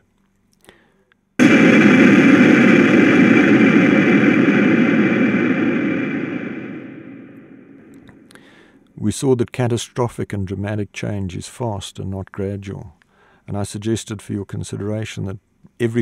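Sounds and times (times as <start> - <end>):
building collapsing rumble: 1.4 - 8.3
loud demolition blast: 1.4 - 8.3.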